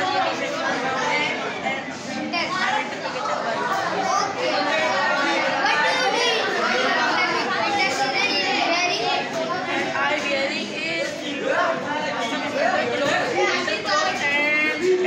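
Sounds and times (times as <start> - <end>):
boys talking: 0.0 - 15.0
voices chattering: 0.0 - 15.0.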